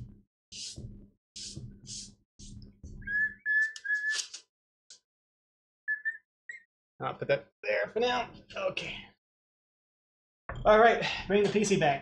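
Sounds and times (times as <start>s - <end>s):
person whistling short notes: 3.1s - 4.3s.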